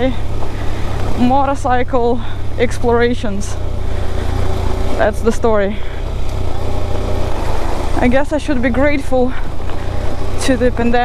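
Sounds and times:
motorcycle engine running: 0:00.0 - 0:11.0
tyres on loose gravel: 0:03.6 - 0:11.0.

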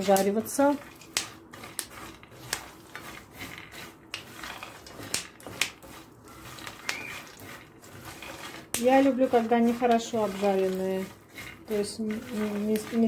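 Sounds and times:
nuts clicking and crackling in pan: 0:00.0 - 0:13.0
spatula scraping rustle: 0:00.0 - 0:13.0.

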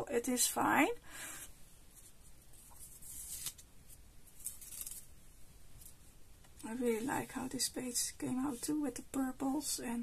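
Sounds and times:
paper page rustling: 0:01.9 - 0:05.1.

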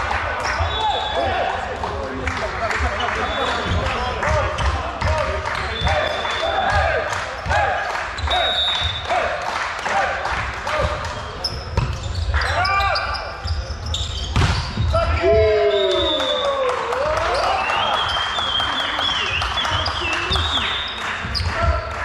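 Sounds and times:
sneakers squeaking on wooden court: 0:02.8 - 0:09.0, 0:10.8 - 0:15.3, 0:19.2 - 0:21.9.

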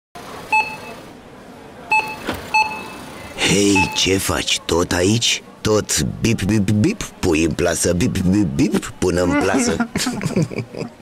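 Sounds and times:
barcode scanner beeping: 0:00.5 - 0:01.0, 0:01.9 - 0:04.2.

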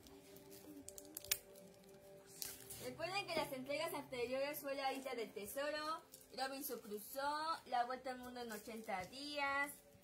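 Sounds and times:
plastic shrink-wrap tearing: 0:00.0 - 0:03.0
faint background music: 0:00.0 - 0:10.0.

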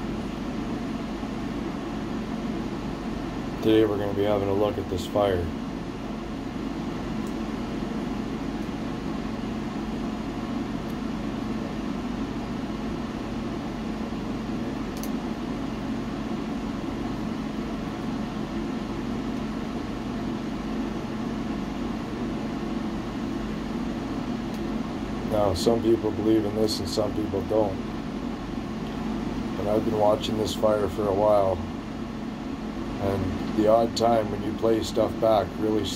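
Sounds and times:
stove whirring hum: 0:00.0 - 0:35.9.

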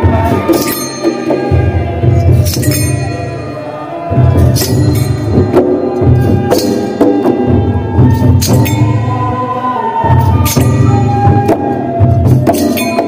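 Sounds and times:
ringing metallic clash: 0:00.3 - 0:03.7, 0:04.4 - 0:05.8, 0:08.3 - 0:09.1, 0:10.4 - 0:11.0, 0:12.4 - 0:13.0
sustained ringing tones: 0:00.3 - 0:06.2, 0:08.2 - 0:09.4
barrel drums beating: 0:10.1 - 0:13.0.

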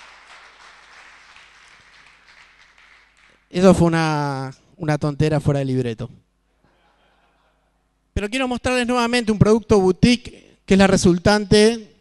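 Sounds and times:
faint audience applause: 0:00.0 - 0:03.5.

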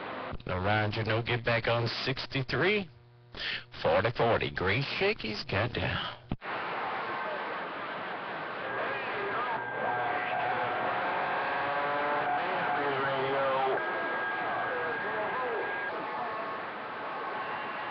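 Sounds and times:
radio static hiss: 0:00.0 - 0:17.9
garbled distant voices: 0:07.1 - 0:17.9
whistling tones: 0:08.6 - 0:17.9.

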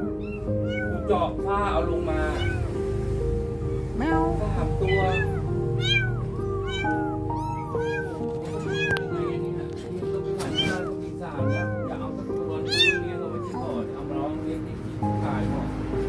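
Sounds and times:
kittens meowing: 0:00.0 - 0:02.8, 0:04.0 - 0:14.3.

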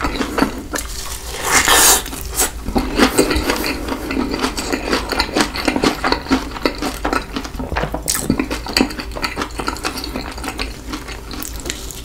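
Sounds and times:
crunchy chewing: 0:00.0 - 0:12.0.

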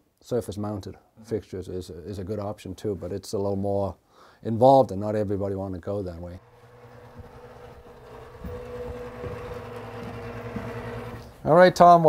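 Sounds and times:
fan humming: 0:06.4 - 0:11.4.

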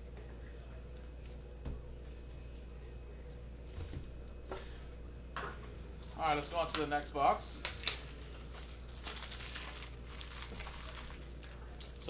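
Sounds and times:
plastic wrapping crinkling: 0:06.0 - 0:07.0, 0:07.6 - 0:12.0
plastic tearing: 0:07.6 - 0:12.0.

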